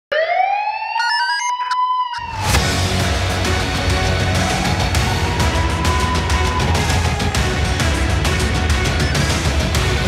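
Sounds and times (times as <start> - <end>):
siren-like wail: 0.1 - 9.2
loud music with deep bass: 2.3 - 10.0.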